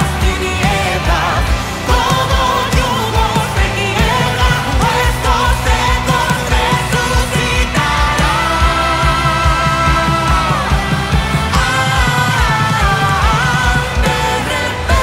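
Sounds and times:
bass: 0.0 - 15.0
drums: 0.0 - 15.0
electric guitars: 0.0 - 15.0
keyboards: 0.0 - 15.0
person singing lead vocal: 0.0 - 15.0.

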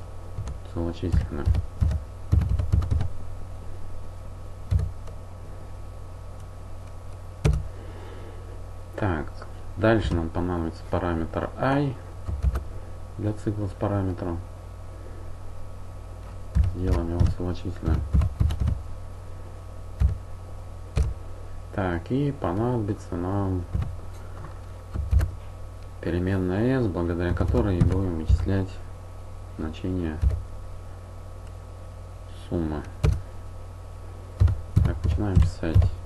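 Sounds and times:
steady low hum: 0.0 - 36.0
keyboard typing: 0.4 - 3.1, 4.7 - 5.2, 7.4 - 7.7, 12.2 - 12.6, 16.5 - 18.8, 20.0 - 20.2, 21.0 - 21.2, 23.7 - 24.0, 24.9 - 25.4, 27.3 - 28.4, 30.2 - 30.4, 33.0 - 33.2, 34.4 - 35.9.

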